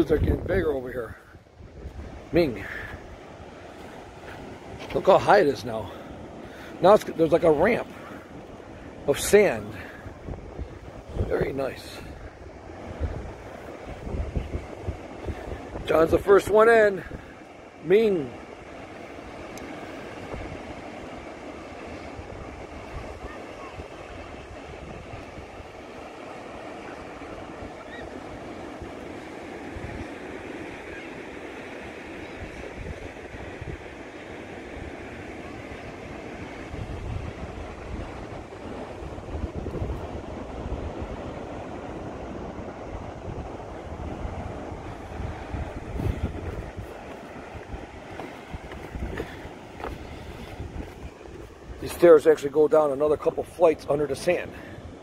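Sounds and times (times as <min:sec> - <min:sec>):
wind buffeting microphone: 0:00.0 - 0:05.1, 0:05.8 - 0:17.8, 0:18.4 - 0:52.5
surf washing up beach: 0:00.0 - 0:55.0.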